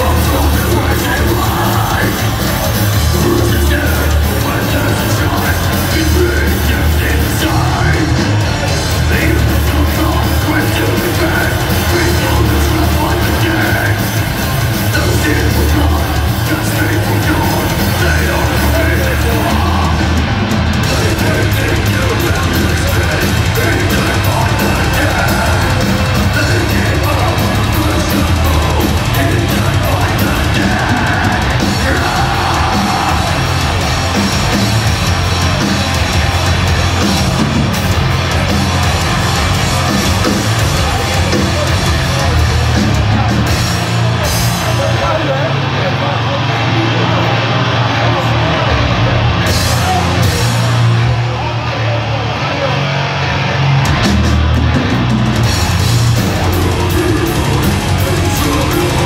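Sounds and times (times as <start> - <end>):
fast pounding drums: 0.0 - 52.9, 53.6 - 59.0
bass guitar: 0.0 - 59.0
death metal band playing live: 0.0 - 59.0
heavily distorted guitars: 0.0 - 59.0.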